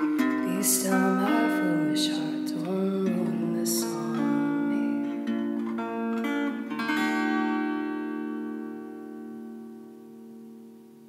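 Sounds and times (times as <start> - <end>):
acoustic guitar chords: 0.0 - 11.0.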